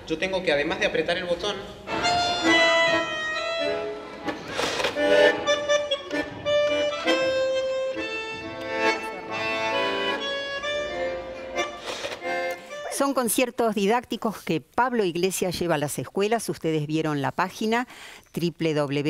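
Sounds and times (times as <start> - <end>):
bandoneon slow melody: 1.8 - 13.3.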